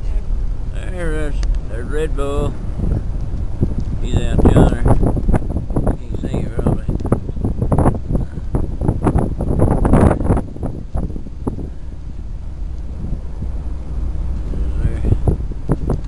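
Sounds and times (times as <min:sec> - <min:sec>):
car rumbling on snowy road: 0:00.0 - 0:16.0
wind buffeting microphone: 0:00.0 - 0:16.0.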